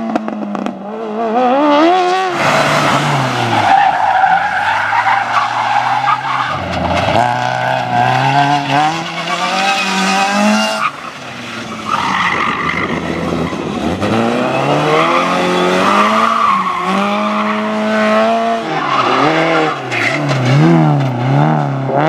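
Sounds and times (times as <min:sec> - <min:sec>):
car engine revving: 0:00.0 - 0:22.0
tyres squealing on tarmac: 0:02.5 - 0:07.2, 0:07.8 - 0:13.4, 0:14.3 - 0:17.9.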